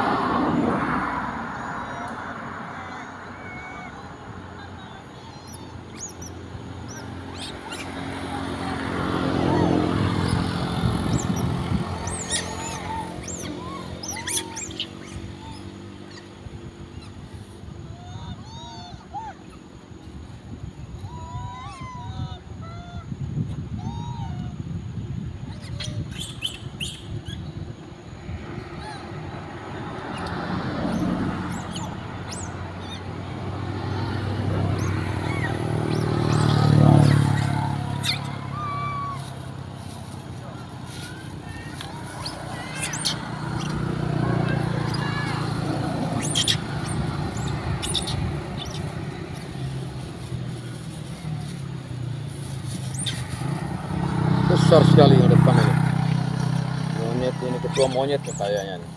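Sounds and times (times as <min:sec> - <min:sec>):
passing motor vehicle engine: 0:00.0 - 0:58.9
short high squeaks: 0:52.7 - 0:53.4.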